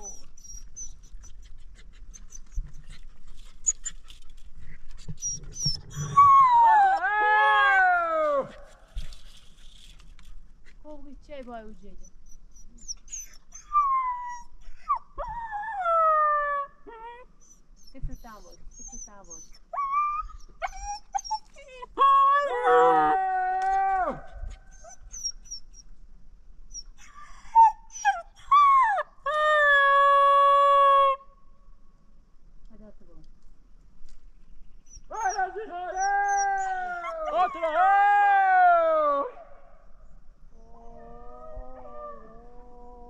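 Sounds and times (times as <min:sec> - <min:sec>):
dog whining and howling: 0:00.0 - 0:01.2, 0:05.2 - 0:08.8, 0:12.6 - 0:25.8, 0:26.7 - 0:31.2, 0:34.9 - 0:39.7, 0:40.6 - 0:43.0.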